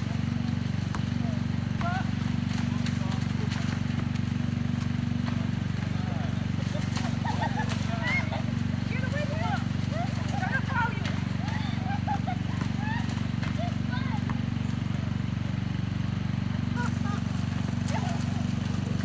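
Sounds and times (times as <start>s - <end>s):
low mechanical hum: 0.0s - 19.0s
players calling: 0.0s - 19.0s
basketball bouncing on asphalt: 0.1s - 6.6s, 12.4s - 16.8s.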